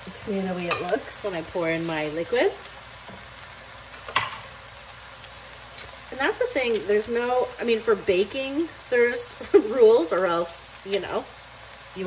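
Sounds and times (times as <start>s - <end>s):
vegetables sizzling in pot: 0.0s - 12.0s.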